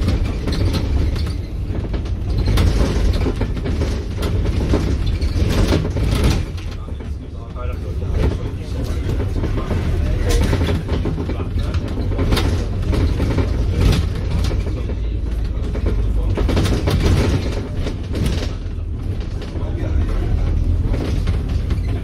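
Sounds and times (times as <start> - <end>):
bus drivetrain and road rumble: 0.0 - 22.0
rattles and knocks from bus body: 0.0 - 22.0.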